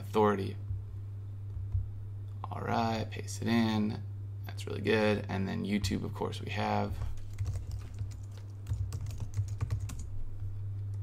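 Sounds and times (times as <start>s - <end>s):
steady low hum: 0.0s - 11.0s
typing on computer keyboard: 7.2s - 10.1s.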